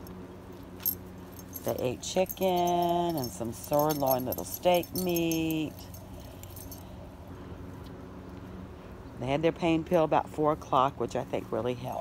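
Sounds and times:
dog collar tags jingling: 0:00.0 - 0:06.9
outdoor background hum: 0:00.0 - 0:12.0.

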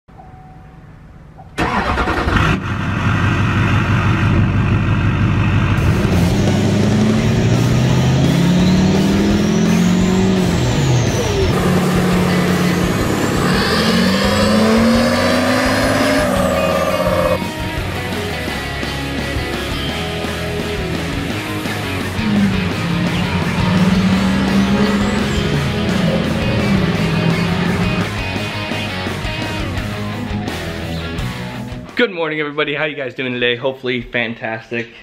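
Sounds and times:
pickup truck accelerating through gears: 0:01.6 - 0:17.4, 0:19.9 - 0:30.6.

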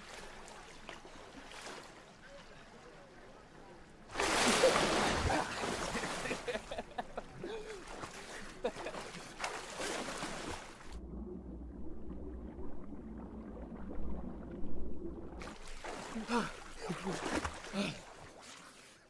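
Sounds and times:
people splashing in a pool: 0:04.1 - 0:11.0, 0:15.4 - 0:19.0
muffled underwater rumble: 0:10.8 - 0:15.6.

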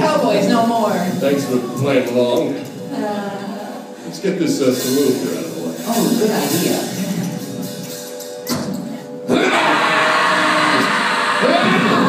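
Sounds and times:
live band music: 0:04.5 - 0:09.5.

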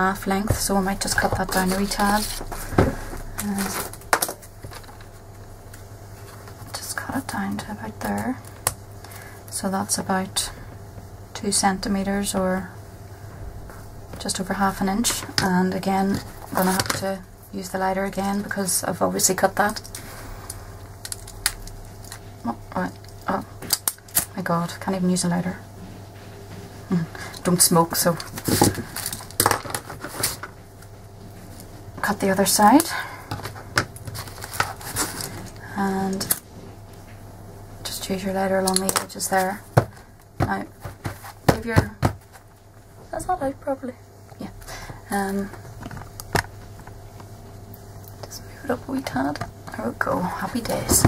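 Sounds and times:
low room hum: 0:00.0 - 0:51.0.

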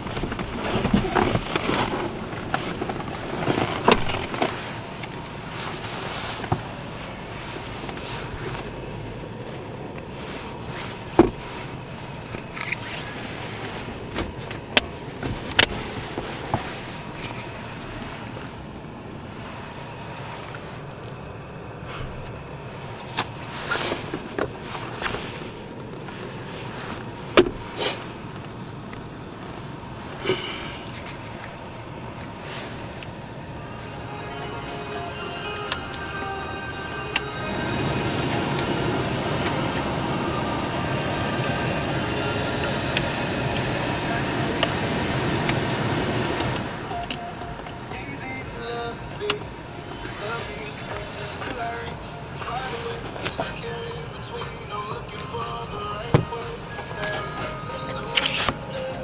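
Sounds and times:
car radio playing music: 0:00.0 - 0:59.0
steady low rumble: 0:00.0 - 0:59.0.

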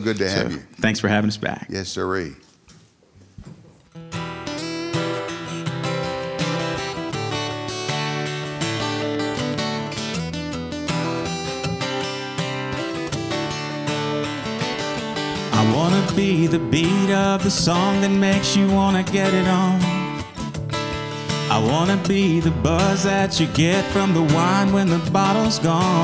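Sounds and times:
acoustic guitars strumming: 0:03.9 - 0:26.0
man singing: 0:15.4 - 0:20.5, 0:21.3 - 0:26.0.

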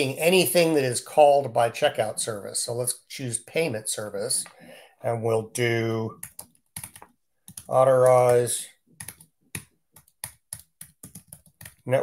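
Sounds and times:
keyboard typing clicks: 0:06.2 - 0:11.8.

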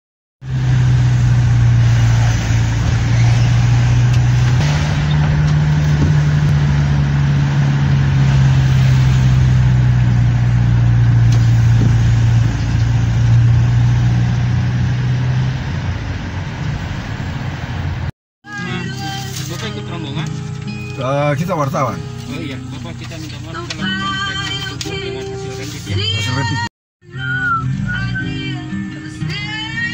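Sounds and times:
car engine hum: 0:00.4 - 0:18.1, 0:18.7 - 0:29.9
road noise: 0:00.4 - 0:29.9.

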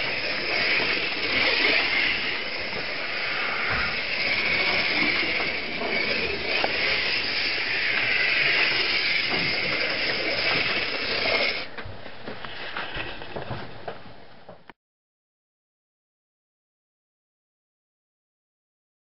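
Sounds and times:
slot car motor whining: 0:00.0 - 0:11.7.

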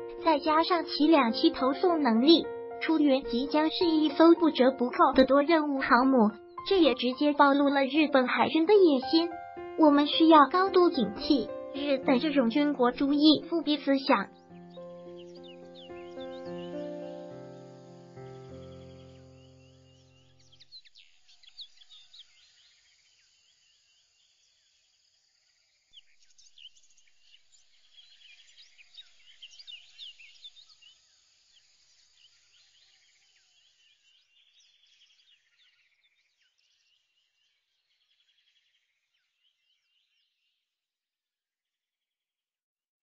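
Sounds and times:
faint birdsong chirps and trills: 0:00.0 - 0:40.8.

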